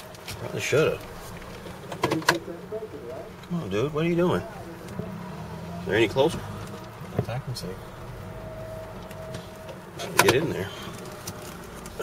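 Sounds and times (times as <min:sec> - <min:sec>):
car engine hum: 0:00.0 - 0:12.0
road noise inside car: 0:00.0 - 0:12.0.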